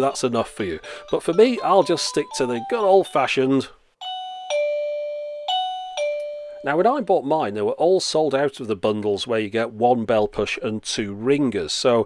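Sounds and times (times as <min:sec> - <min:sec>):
electronic doorbell chime: 0:04.0 - 0:06.9.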